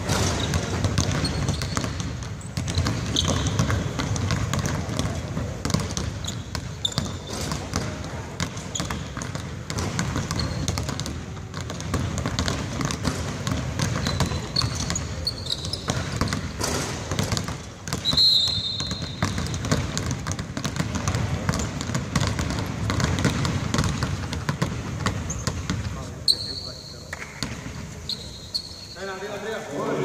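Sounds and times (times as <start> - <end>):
basketballs dribbling on hardwood: 0.0 - 28.0
short high squeaks: 28.1 - 29.2.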